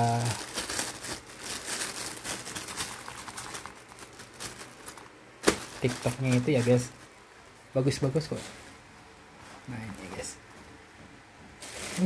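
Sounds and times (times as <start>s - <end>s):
plastic packaging crinkling: 0.0s - 7.2s, 11.6s - 12.0s.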